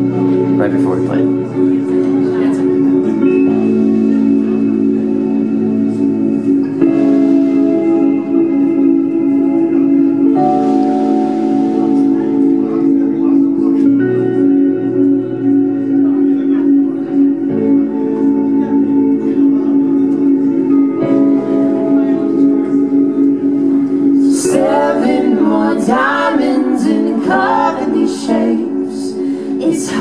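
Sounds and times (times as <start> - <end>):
clean electric guitars: 0.0 - 30.0
electric keyboard sustained chords: 0.0 - 30.0.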